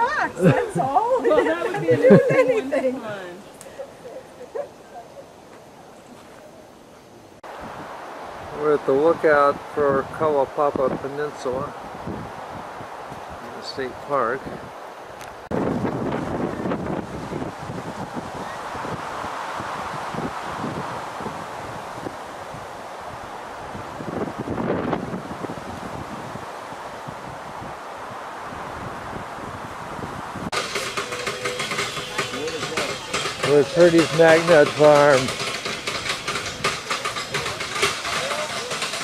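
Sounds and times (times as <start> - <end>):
wind noise on microphone: 7.4 - 38.3
faint voices: 30.6 - 39.0
man speaking: 32.3 - 35.3.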